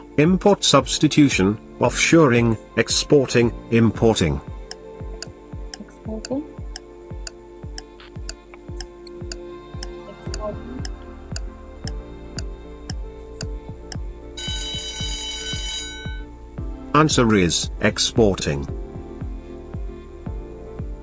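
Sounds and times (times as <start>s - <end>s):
background music with beat: 4.3s - 17.0s, 17.6s - 21.0s
clock ticking: 4.7s - 16.2s
alarm clock ringing: 14.4s - 16.3s.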